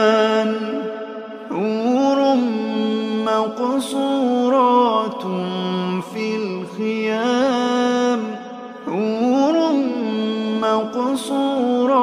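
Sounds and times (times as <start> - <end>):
person chanting melodically: 0.0 - 12.0.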